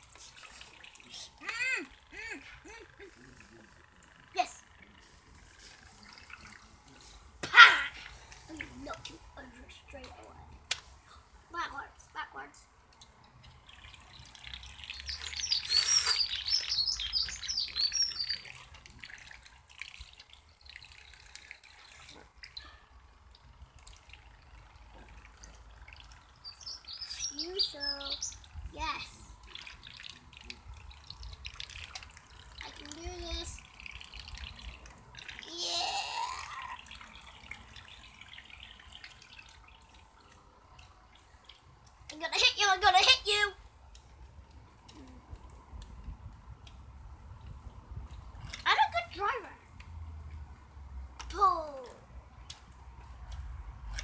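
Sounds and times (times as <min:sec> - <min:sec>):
child calling out: 0:01.4 - 0:02.5, 0:07.4 - 0:08.0, 0:35.4 - 0:36.8
high chirping: 0:14.8 - 0:18.6, 0:26.4 - 0:28.5
water splashing in paddling pool: 0:18.3 - 0:27.4, 0:29.3 - 0:42.1.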